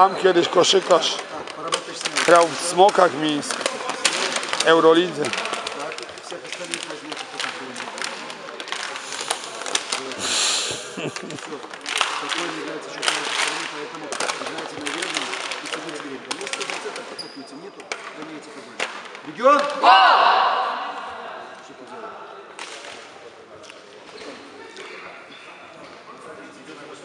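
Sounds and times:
many voices talking: 0.0 - 27.0.

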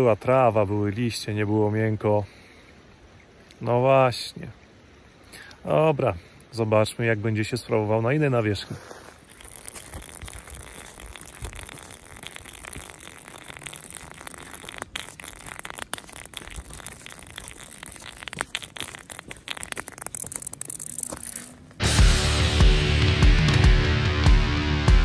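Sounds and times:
watch scraping on asphalt: 8.6 - 21.8
loud guitar music: 21.8 - 25.0.

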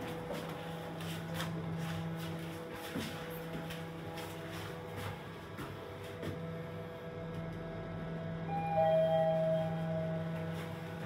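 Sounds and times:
lift running with low hum: 0.0 - 11.0
two-note lift tone: 8.4 - 11.0.

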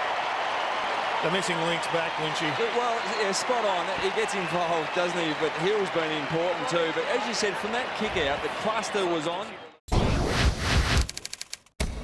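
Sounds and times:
rapid stutter of clicks: 10.8 - 11.8.

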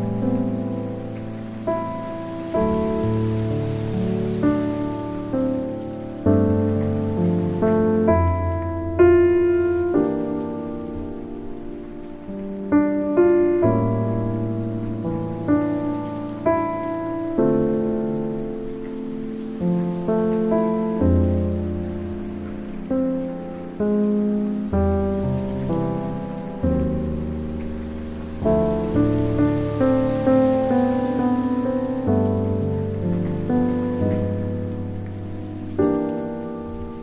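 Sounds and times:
faint steady hiss: 0.0 - 37.0
soft piano music: 0.0 - 37.0.

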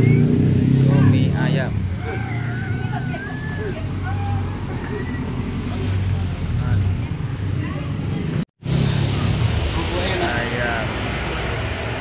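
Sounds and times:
motor vehicles rumbling: 0.0 - 12.0.

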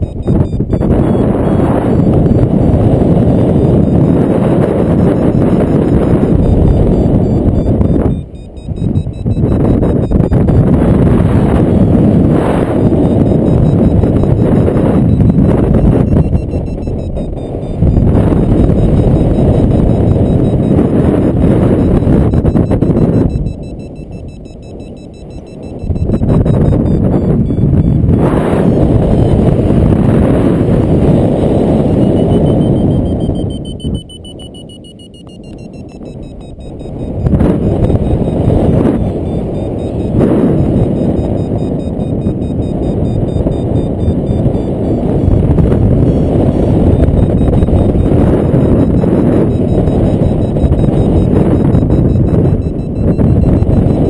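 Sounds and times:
faint high beeps: 0.0 - 54.0
wind buffeting microphone: 0.0 - 54.0.

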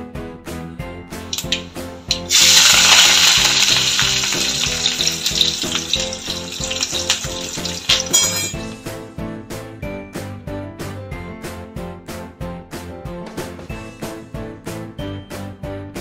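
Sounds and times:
background music: 0.0 - 16.0
hot oil sizzling: 1.2 - 8.8.

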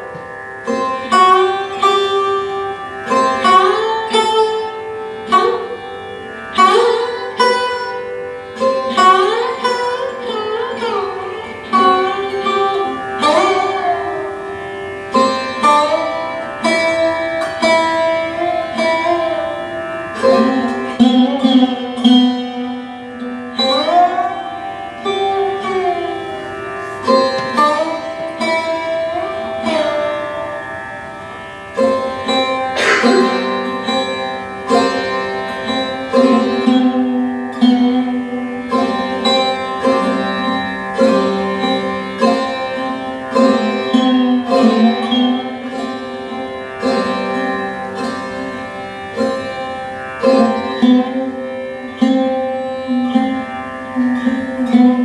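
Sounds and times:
ringing sympathetic strings: 0.0 - 55.0
sarod plucked notes sliding: 0.0 - 55.0.

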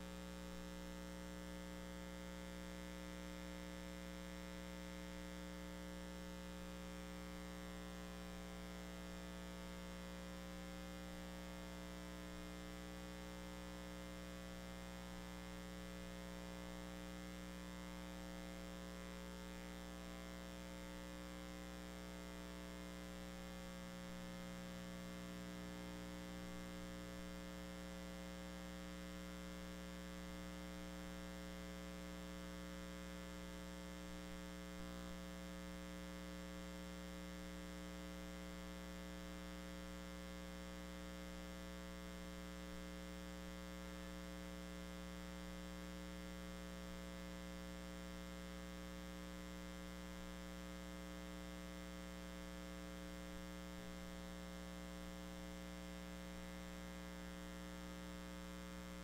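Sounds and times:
electrical mains hum: 0.0 - 59.0.

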